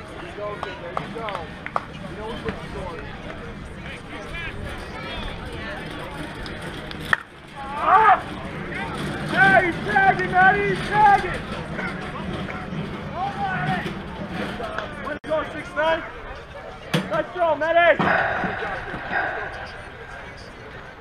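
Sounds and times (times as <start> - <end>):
players shouting: 7.5 - 11.9, 13.1 - 16.0, 17.2 - 20.9.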